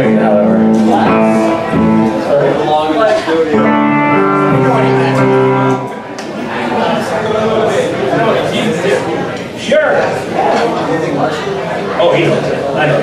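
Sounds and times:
electric guitar notes and chords: 0:00.0 - 0:06.5
voices talking: 0:00.0 - 0:13.0.

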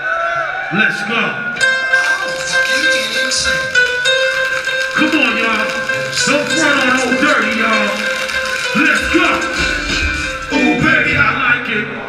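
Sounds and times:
hip-hop music over pa: 0:01.6 - 0:11.5
man talking over music: 0:05.0 - 0:11.9.

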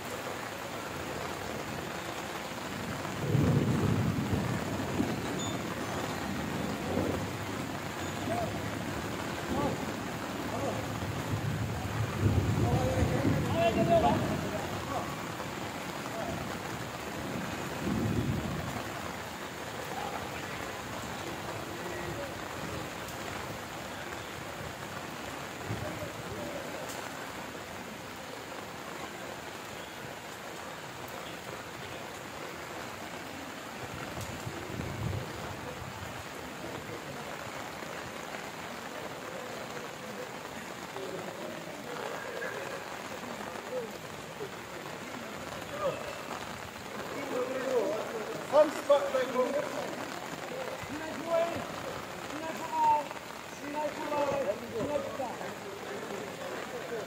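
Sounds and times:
rain on a metal roof: 0:00.0 - 0:57.0.

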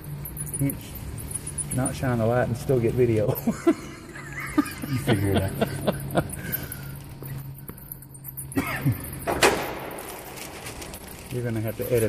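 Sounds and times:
steady low hum: 0:00.0 - 0:12.0
man laughing: 0:03.3 - 0:06.9, 0:08.6 - 0:09.1.

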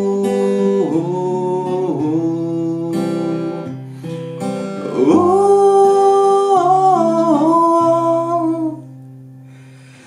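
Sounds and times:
man humming a melody: 0:00.0 - 0:03.8, 0:04.7 - 0:09.0
acoustic guitar chords: 0:00.0 - 0:10.0.

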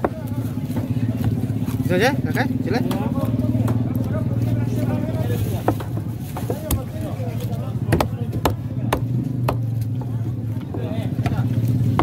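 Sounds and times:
faint voices: 0:00.0 - 0:12.0
low engine hum: 0:00.0 - 0:12.0.

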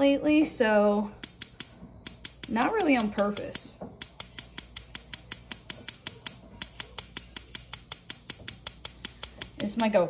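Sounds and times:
gas igniter clicking: 0:01.2 - 0:10.0.

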